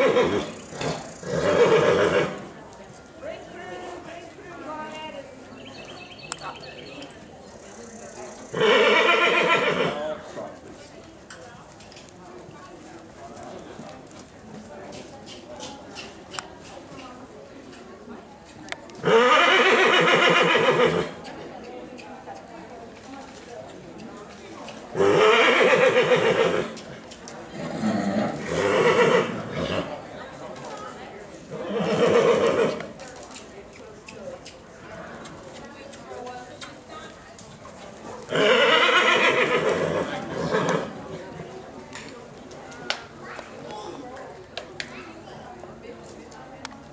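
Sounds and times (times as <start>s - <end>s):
horse whinnying: 0.0s - 2.4s, 8.5s - 10.0s, 19.0s - 21.1s, 25.0s - 26.7s, 27.7s - 29.9s, 38.3s - 40.9s
faint hoofbeats: 31.5s - 44.3s.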